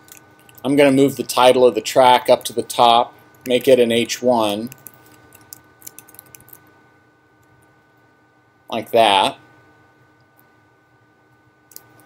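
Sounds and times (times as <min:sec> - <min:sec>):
computer keyboard typing: 0:04.6 - 0:06.6.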